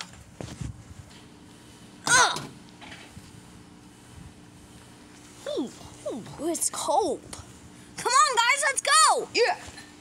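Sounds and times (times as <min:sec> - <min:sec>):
faint steady hum: 0:00.0 - 0:10.0
high-pitched vocal cry: 0:02.1 - 0:02.5.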